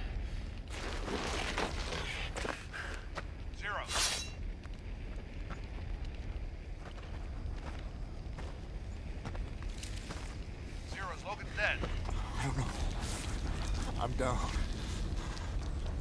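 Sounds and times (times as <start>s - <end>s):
low rumble of fire: 0.0s - 16.0s.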